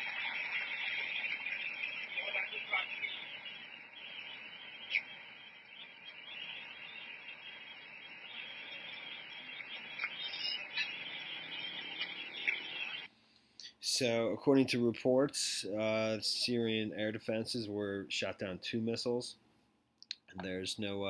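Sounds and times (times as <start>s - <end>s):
fire hissing: 0.0s - 13.1s
fire popping: 0.0s - 13.1s.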